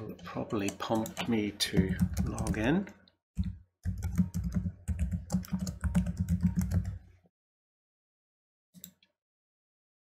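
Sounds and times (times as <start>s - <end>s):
computer keyboard typing: 0.0s - 2.8s, 3.4s - 7.0s.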